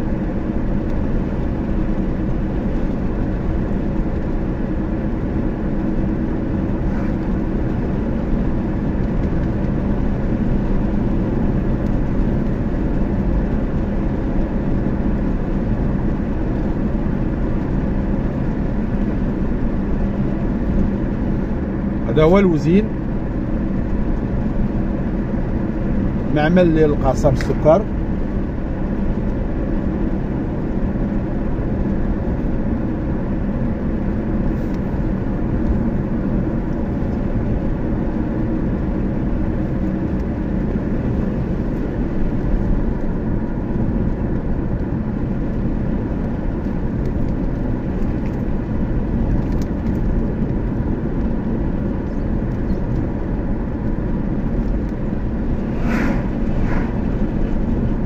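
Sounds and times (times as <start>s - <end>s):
road and engine noise inside car: 0.0s - 58.0s
brief sharp sounds: 55.6s - 57.1s.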